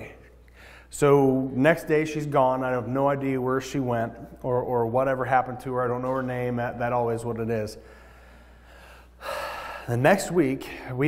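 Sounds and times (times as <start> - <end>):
steady low hum: 0.0 - 11.0
man breathing in: 0.5 - 0.9, 7.8 - 10.0.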